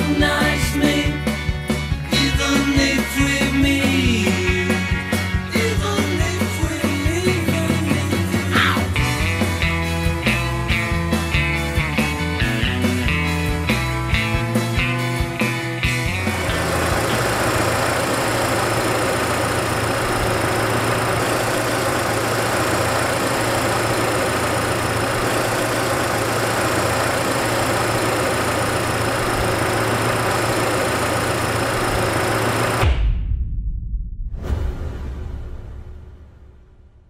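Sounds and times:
car engine idling: 16.2s - 32.8s
low rumble: 32.8s - 37.0s.

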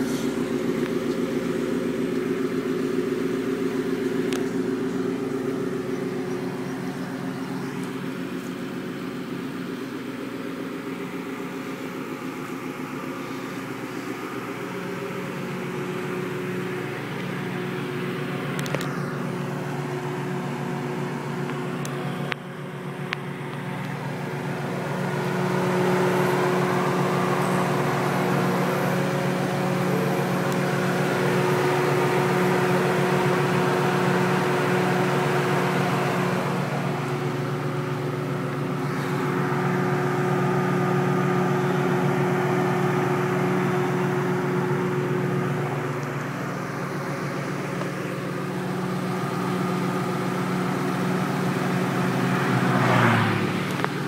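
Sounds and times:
car engine idling: 0.0s - 54.0s.

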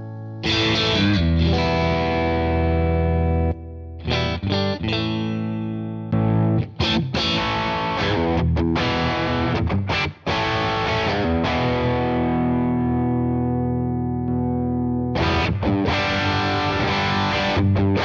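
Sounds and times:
overdriven electric guitar chords: 0.0s - 18.0s.

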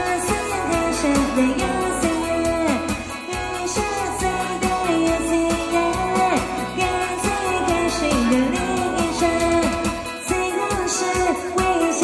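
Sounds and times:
backing track with guitar and beat: 0.0s - 12.0s
woman singing into microphone: 0.0s - 12.0s.

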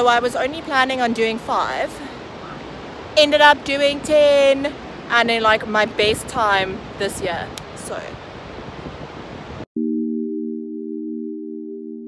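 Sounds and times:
wind and surf noise: 0.0s - 9.7s
sustained synthesizer chord: 9.8s - 12.0s.

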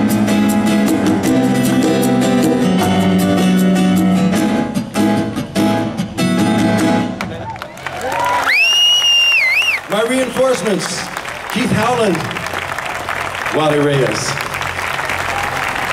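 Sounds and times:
sustained keyboard chords: 0.0s - 7.3s
audience applause: 7.2s - 15.9s
audience cheering: 7.3s - 15.9s
loud rising whistle: 8.4s - 9.8s.

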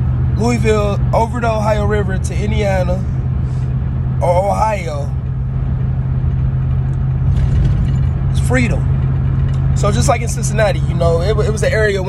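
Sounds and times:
car engine and road drone: 0.0s - 12.0s.

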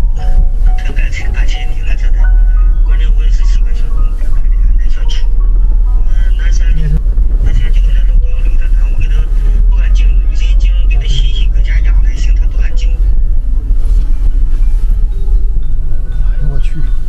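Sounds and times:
car driving heard from inside: 0.0s - 17.0s.

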